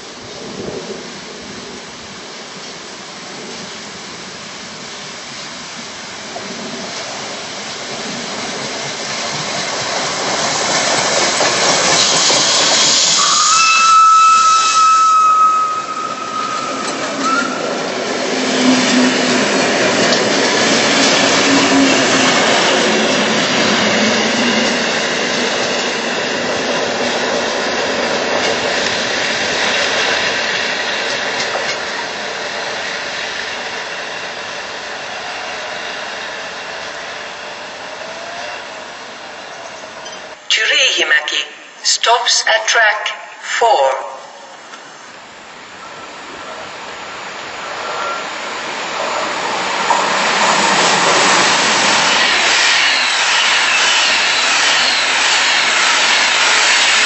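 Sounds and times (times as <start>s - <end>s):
wheels rolling on rail: 0.0s - 40.4s, 44.6s - 57.0s
hiss of steam: 2.1s - 19.6s, 44.8s - 57.0s
steam whistle blast: 13.0s - 17.7s.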